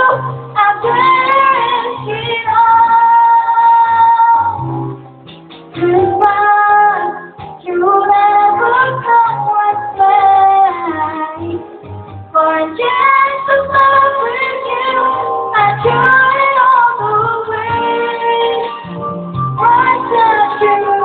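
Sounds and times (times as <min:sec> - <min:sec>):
girl singing into microphone: 0:00.0 - 0:05.0, 0:05.7 - 0:21.0
backing track with bass line: 0:00.0 - 0:21.0.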